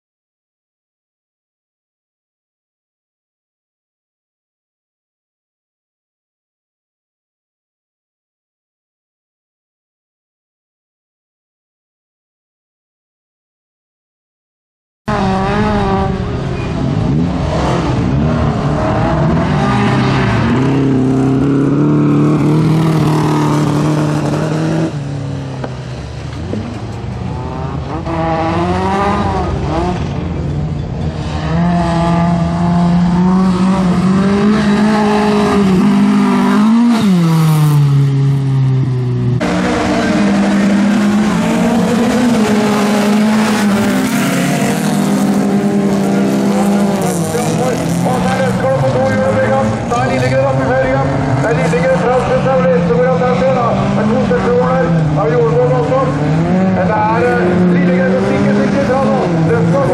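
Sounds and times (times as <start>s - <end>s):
race car engines revving: 15.1s - 59.9s.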